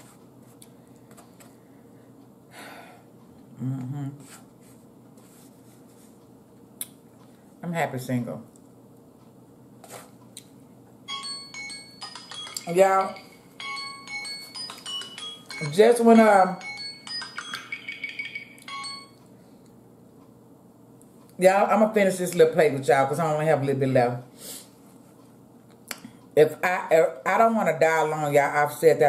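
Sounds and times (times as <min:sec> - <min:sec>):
person humming: 0:03.5 - 0:04.4.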